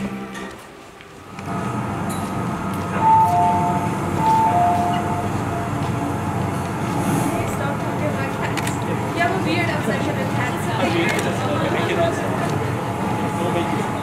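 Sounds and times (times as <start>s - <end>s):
subway train rumbling: 0.0s - 14.0s
two-note descending chime: 3.0s - 5.4s.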